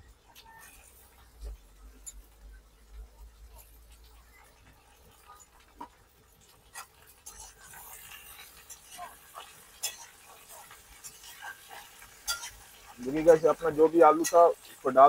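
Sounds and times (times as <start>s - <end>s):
oil sizzling: 0.0s - 15.0s
metal spatula scraping pan: 6.4s - 14.9s.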